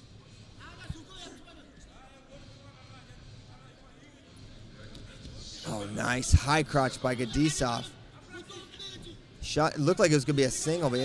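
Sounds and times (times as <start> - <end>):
low murmur of hall: 0.0 - 11.0.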